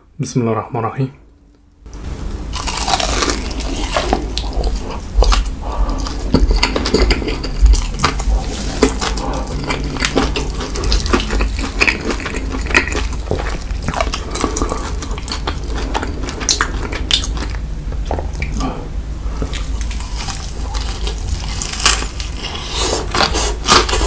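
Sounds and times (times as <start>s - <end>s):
chewing crunchy fried chicken: 2.5s - 18.7s, 19.3s - 24.0s.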